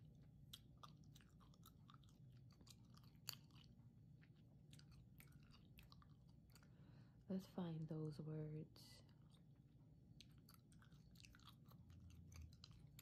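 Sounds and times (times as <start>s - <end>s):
gum chewing clicks and smacks: 0.0s - 7.1s, 9.1s - 13.0s.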